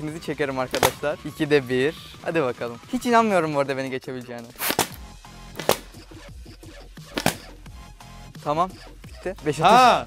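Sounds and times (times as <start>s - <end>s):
background music: 0.0s - 10.0s
balloon popping: 0.7s - 1.1s, 4.5s - 6.2s, 7.1s - 7.6s.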